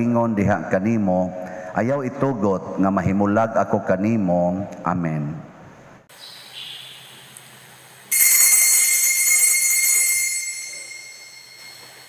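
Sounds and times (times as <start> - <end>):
small high-pitched bell ringing: 8.1 - 12.0.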